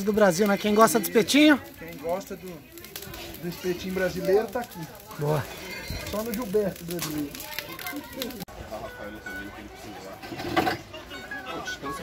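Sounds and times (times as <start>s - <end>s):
voices talking and calling out: 0.0s - 12.0s.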